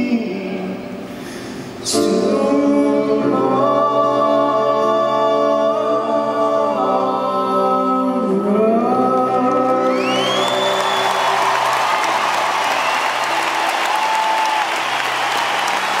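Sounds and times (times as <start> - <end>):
voices singing with piano and guitar: 0.0 - 16.0
audience applauding and cheering: 9.5 - 16.0
rising whistle: 9.9 - 16.0.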